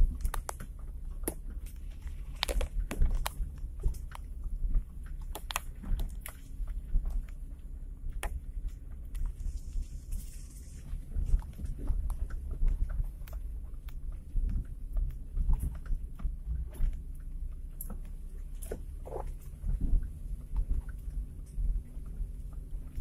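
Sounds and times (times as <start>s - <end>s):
vehicle cabin rumble: 0.0s - 23.0s
vehicle rattles and knocks: 0.0s - 23.0s.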